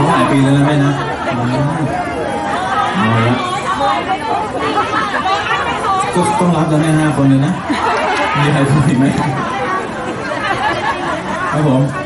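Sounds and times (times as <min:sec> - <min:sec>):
people talking at once: 0:00.0 - 0:12.0.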